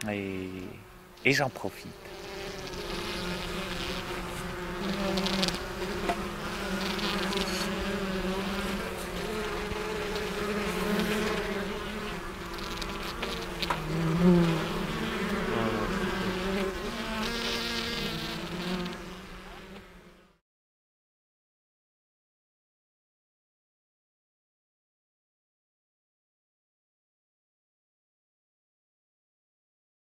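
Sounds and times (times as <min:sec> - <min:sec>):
honeybees buzzing: 0:00.0 - 0:20.4.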